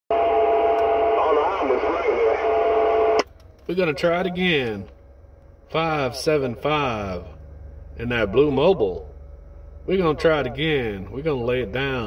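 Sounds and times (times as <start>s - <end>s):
distorted distant voice: 0.1s - 3.2s
radio static hiss: 0.2s - 3.2s.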